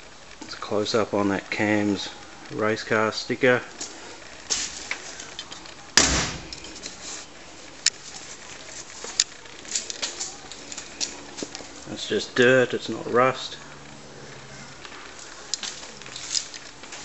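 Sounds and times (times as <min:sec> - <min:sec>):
loud short thump: 0:06.0 - 0:06.5.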